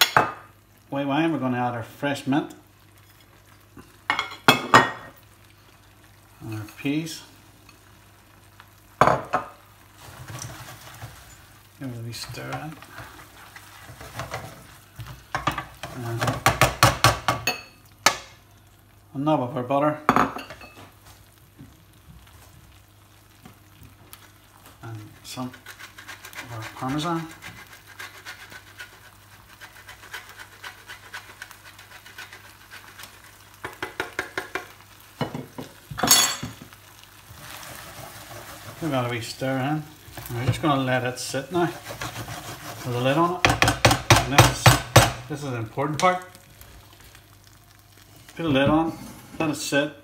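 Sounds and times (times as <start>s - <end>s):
spatula stirring risotto: 9.8s - 17.0s, 23.6s - 35.2s, 36.9s - 45.0s
knocks and scrapes on cookware: 13.8s - 18.2s, 41.7s - 42.8s, 43.4s - 45.3s
cheese grating on box grater: 25.3s - 33.4s, 41.3s - 43.4s.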